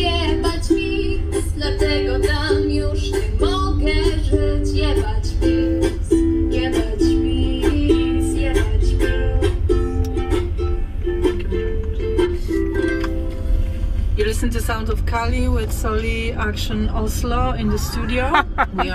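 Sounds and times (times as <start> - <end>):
song with plucked strings on radio: 0.0 - 14.5
moving van rumble: 0.0 - 18.9.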